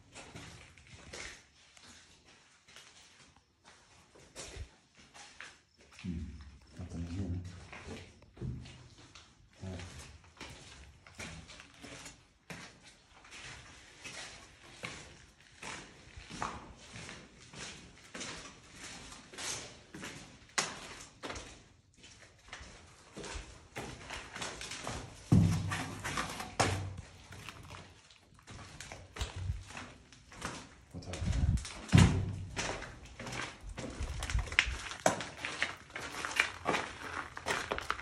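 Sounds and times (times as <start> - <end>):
footsteps on debris-strewn floor: 0.0 - 6.6, 7.4 - 38.0.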